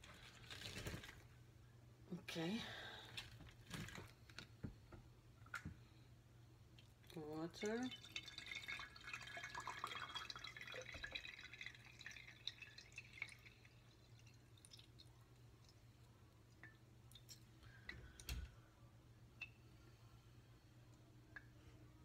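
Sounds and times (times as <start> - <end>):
water trickling into glass jar: 7.0 - 17.5.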